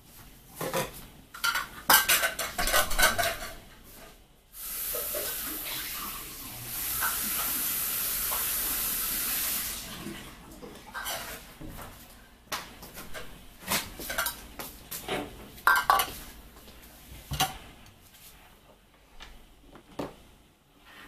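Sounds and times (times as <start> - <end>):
dishes and utensils clinking: 0.6 - 3.7, 10.7 - 11.8, 12.9 - 16.2
steady hiss: 4.5 - 9.9.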